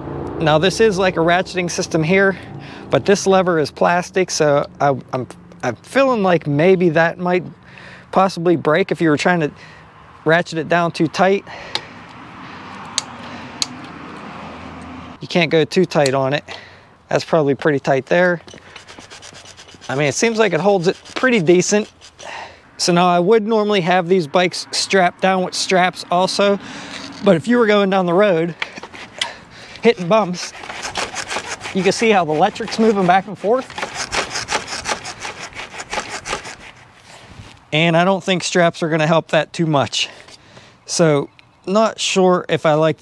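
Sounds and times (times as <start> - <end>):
bike frame scraping on rack: 17.8 - 22.6, 26.4 - 37.7.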